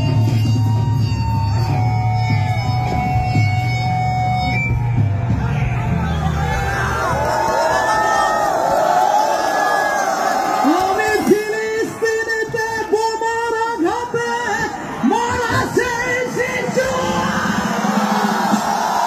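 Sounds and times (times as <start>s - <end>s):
live rock band playing: 0.0s - 6.8s
crowd cheering and whooping: 0.0s - 13.1s, 13.8s - 19.0s.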